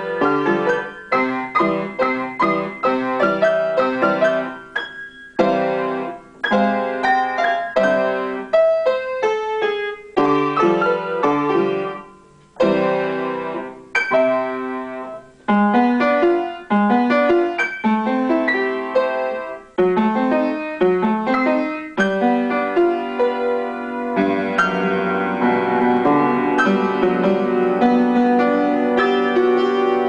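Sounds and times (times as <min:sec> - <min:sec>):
piano duet: 0:00.0 - 0:30.0.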